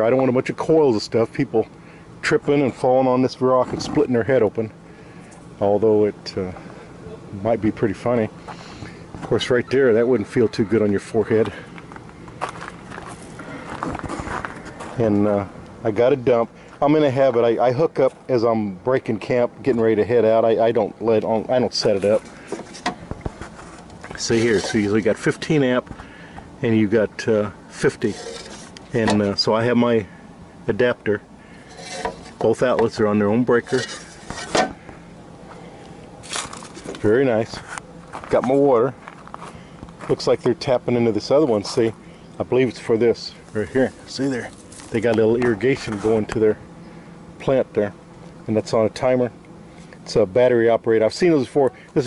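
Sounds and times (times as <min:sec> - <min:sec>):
footsteps on gravel: 0:11.4 - 0:15.0, 0:36.2 - 0:40.3, 0:43.4 - 0:46.1.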